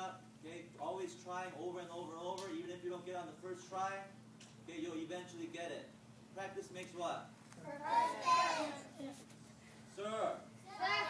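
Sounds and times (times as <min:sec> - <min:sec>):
children calling out together: 0:07.6 - 0:09.2, 0:10.6 - 0:11.0.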